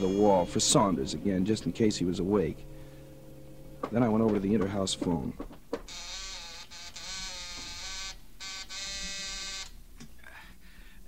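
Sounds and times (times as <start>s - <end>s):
intercom buzzer buzzing: 0.0s - 1.9s, 5.8s - 9.8s.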